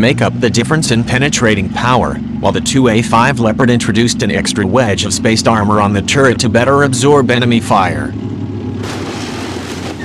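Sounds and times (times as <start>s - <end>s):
dense rumbling of gunfire: 8.8s - 10.0s.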